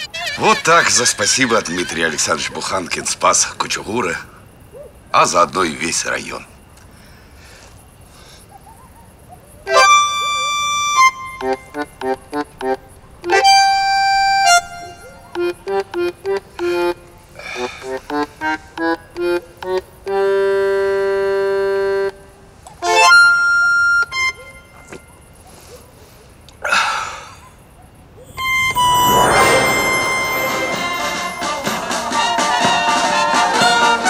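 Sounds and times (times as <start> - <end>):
free-reed instrument tune: 9.7 - 17.3, 28.3 - 31.7.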